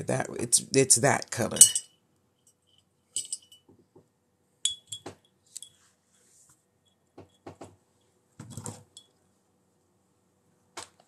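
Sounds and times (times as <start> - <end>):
wire clinking against glass jar: 1.5 - 3.7, 4.7 - 5.8.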